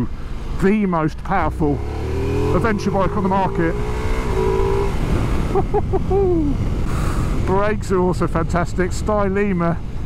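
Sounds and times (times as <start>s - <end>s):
wordless voice sound: 0.0s - 4.6s
motorcycle engine rumble: 0.0s - 10.0s
wind noise while riding: 3.8s - 10.0s.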